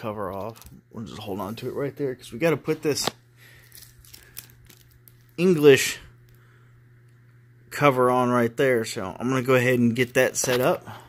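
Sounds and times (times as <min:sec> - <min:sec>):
low steady hum: 0:00.0 - 0:11.0
plastic film crinkling: 0:02.8 - 0:05.5.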